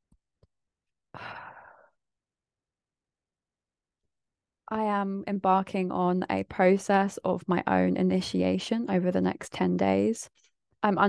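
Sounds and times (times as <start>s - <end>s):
woman sighing: 1.2s - 1.9s.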